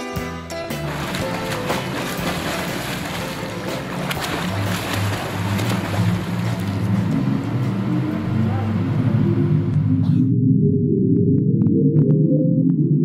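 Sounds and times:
instrumental background music: 0:00.0 - 0:07.9.

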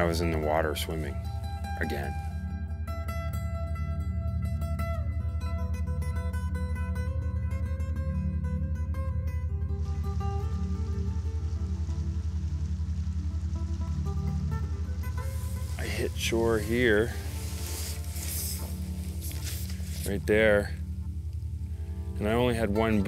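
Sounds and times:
low pulsing drone: 0:00.0 - 0:23.0
plucked guitar music: 0:00.0 - 0:23.0
stream water flowing: 0:09.7 - 0:23.0.

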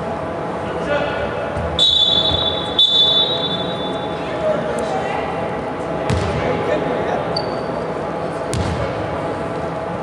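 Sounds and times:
echoing hall background: 0:00.0 - 0:10.0
referee's whistle blasts: 0:01.8 - 0:04.1.

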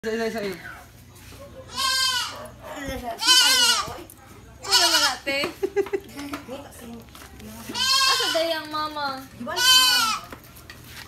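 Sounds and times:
goat bleating: 0:01.7 - 0:02.6, 0:03.2 - 0:04.0, 0:04.6 - 0:05.3, 0:07.7 - 0:08.8, 0:09.4 - 0:10.3.

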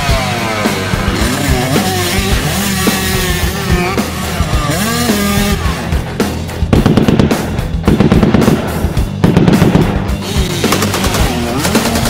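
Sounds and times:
cartoon background music: 0:00.0 - 0:12.0
motorbike engine revving: 0:00.0 - 0:12.0
rapid rattling gunfire: 0:06.7 - 0:12.0.

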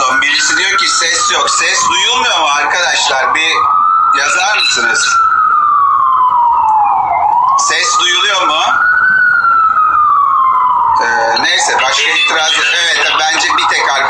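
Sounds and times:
emergency siren wailing: 0:00.0 - 0:14.0.

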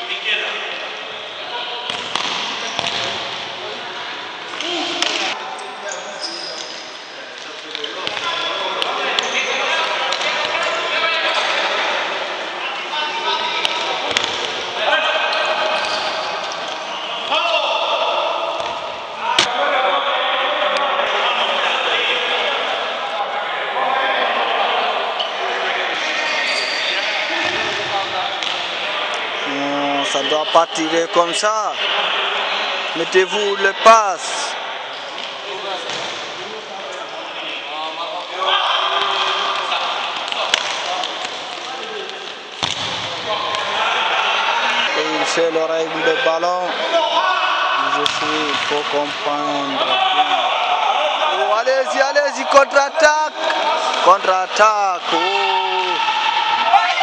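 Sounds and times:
people calling out: 0:55.0 - 0:57.0.

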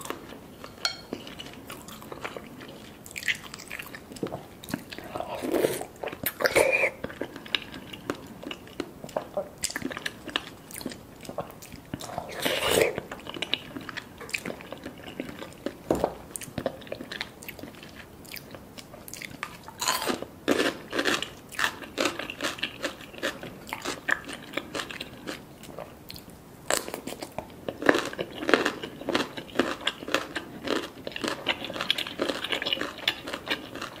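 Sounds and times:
person chewing: 0:00.0 - 0:34.0.

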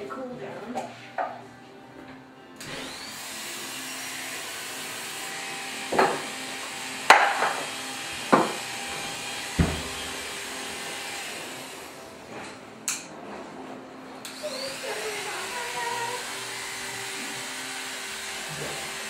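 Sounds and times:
electric hair clipper buzzing: 0:02.6 - 0:12.4, 0:14.2 - 0:19.0.

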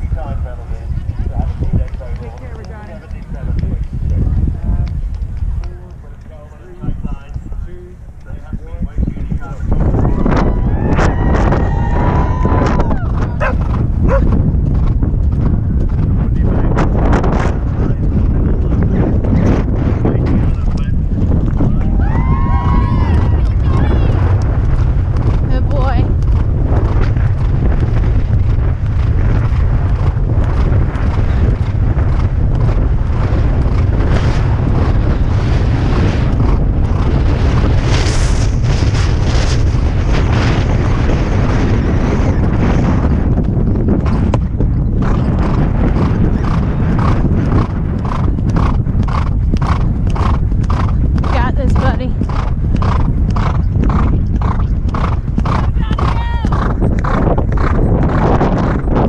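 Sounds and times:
horse hoofbeats galloping: 0:00.0 - 0:59.0
wind rumbling on microphone: 0:00.0 - 0:59.0
horse breathing: 0:45.1 - 0:59.0.

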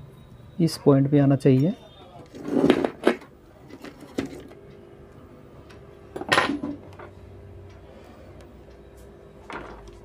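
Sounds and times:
metal tools clattering on workbench: 0:06.2 - 0:06.8.

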